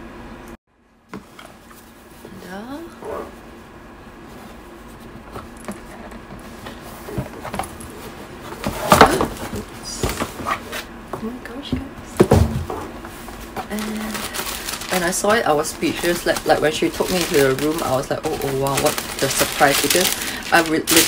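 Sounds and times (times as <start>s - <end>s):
knocks on cardboard box: 12.2s - 12.8s
paper rustling: 13.1s - 21.0s.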